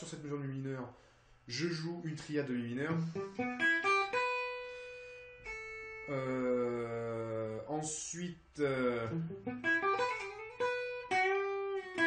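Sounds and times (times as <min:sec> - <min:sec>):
clean electric guitar notes: 0:09.0 - 0:12.0.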